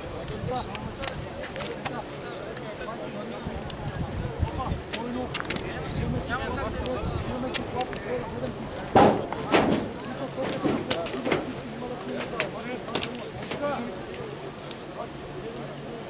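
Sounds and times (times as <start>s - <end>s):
men talking and calling out: 0.0s - 16.0s
sharp clicks and knocks: 8.8s - 14.8s.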